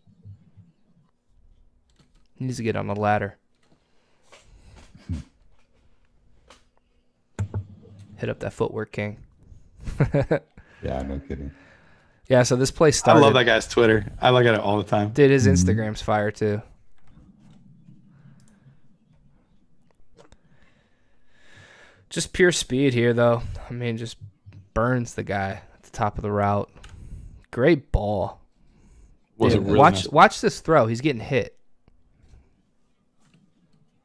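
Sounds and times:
person humming briefly: 15.4 - 15.8.

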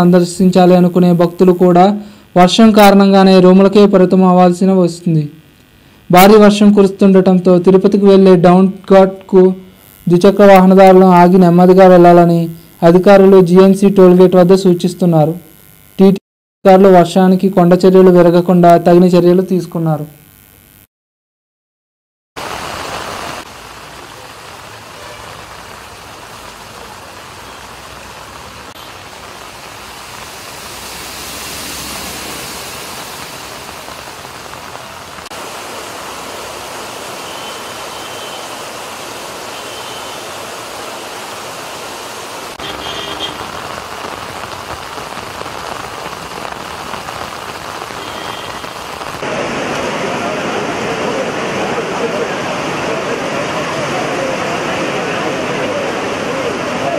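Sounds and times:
floodwater running across road: 22.4 - 56.9
heavy rain falling: 22.4 - 56.9.

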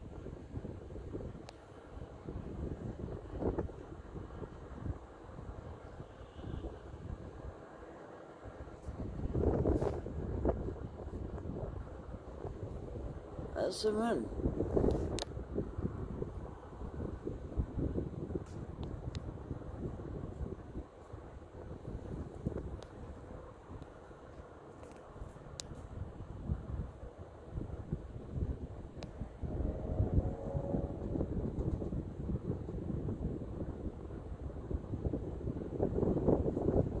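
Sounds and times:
wind buffeting microphone: 0.0 - 7.8, 8.4 - 37.0.

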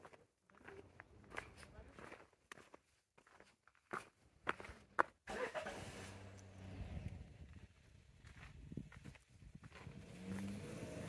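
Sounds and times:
footsteps on cobblestones: 0.0 - 5.2, 7.5 - 10.6.

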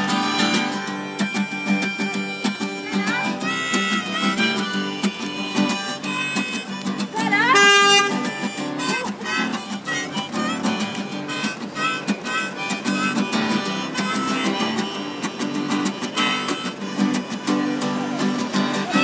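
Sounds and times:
acoustic guitar strumming: 0.0 - 19.0
harmonica playing: 0.0 - 19.0.

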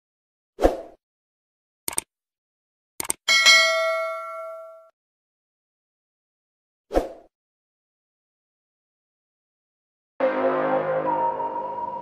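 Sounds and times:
bright bell ding: 3.3 - 4.9.

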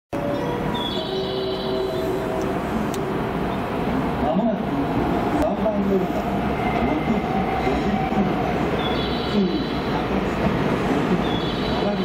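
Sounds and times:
train rail rumble: 0.2 - 12.0.

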